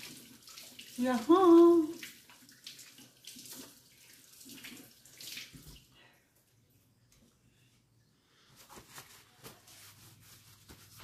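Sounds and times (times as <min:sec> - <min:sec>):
faucet water over hands: 0:00.0 - 0:06.0.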